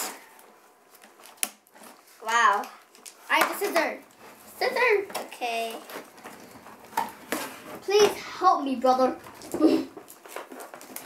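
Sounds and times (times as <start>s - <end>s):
packaging rustling: 0.0s - 7.9s, 9.2s - 11.0s
child speaking: 2.2s - 6.0s, 7.8s - 9.9s
packaging crinkle: 9.3s - 11.0s.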